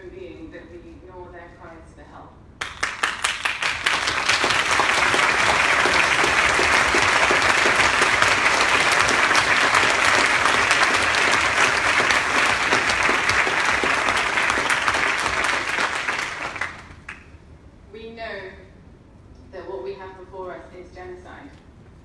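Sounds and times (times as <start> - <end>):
large audience applauding: 2.6 - 17.4.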